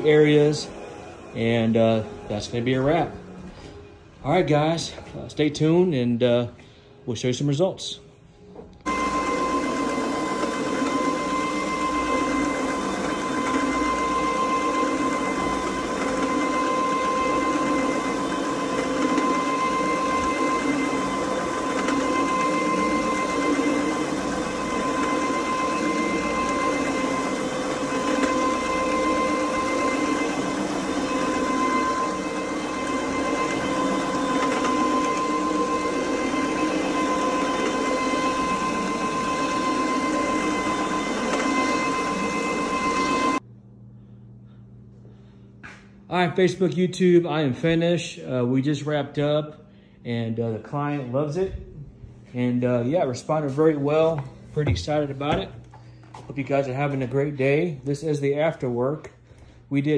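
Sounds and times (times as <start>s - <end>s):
carpet brushing machine running: 0.0s - 5.0s, 8.6s - 44.2s, 51.2s - 59.9s.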